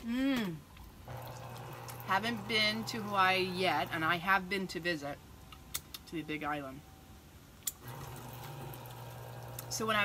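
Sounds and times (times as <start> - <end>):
electric juicer motor humming: 1.1 - 4.1, 7.8 - 10.0.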